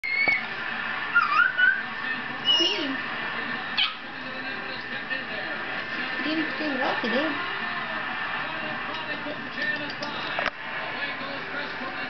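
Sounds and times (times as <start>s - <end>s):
baby squealing: 0.0s - 0.5s, 1.1s - 1.8s.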